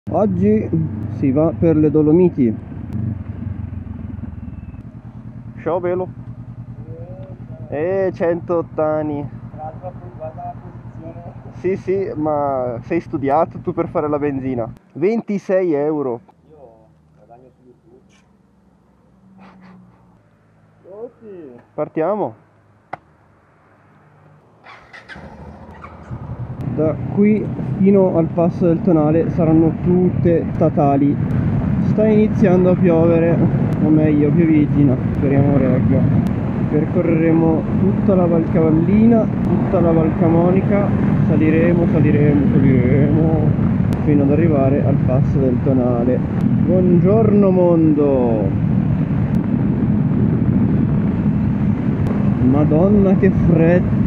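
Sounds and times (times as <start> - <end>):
motorcycle engine cruising: 0.1 - 14.8, 16.0 - 54.0
motorcycle engine idling: 2.8 - 14.4, 24.6 - 27.5
wind noise on microphone: 29.0 - 54.0.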